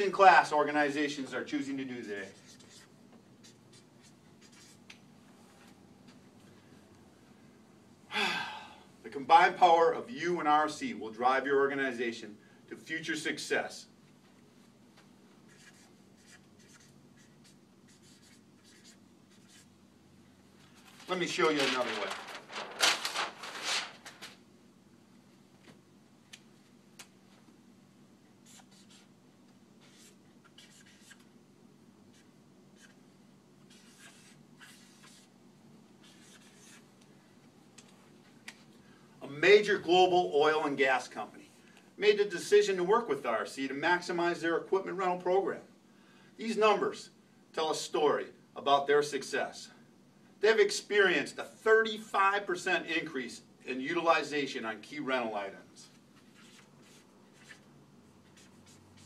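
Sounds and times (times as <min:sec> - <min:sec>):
low room hum: 0:00.0 - 0:59.0
marker scratching on paper: 0:02.1 - 0:05.0, 0:15.5 - 0:19.7, 0:28.4 - 0:29.1, 0:29.8 - 0:31.3, 0:32.1 - 0:33.0, 0:33.6 - 0:35.3, 0:36.0 - 0:36.8, 0:56.2 - 0:57.6, 0:58.2 - 0:59.0
man sighing: 0:08.1 - 0:09.0.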